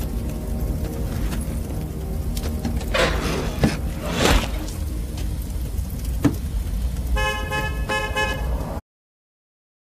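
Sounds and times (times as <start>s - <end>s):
car horn honking: 7.2s - 8.5s.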